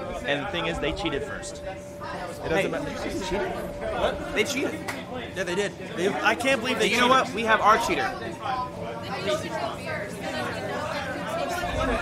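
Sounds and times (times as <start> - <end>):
background chatter of group: 0.0 - 12.0.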